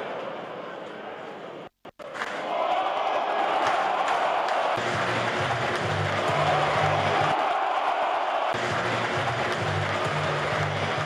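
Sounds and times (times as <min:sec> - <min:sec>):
stadium crowd chanting and cheering: 0:00.1 - 0:11.0.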